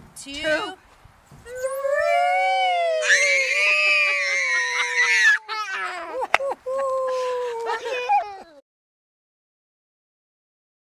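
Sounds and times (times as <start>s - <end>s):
people crying out on a slide: 1.5s - 8.6s.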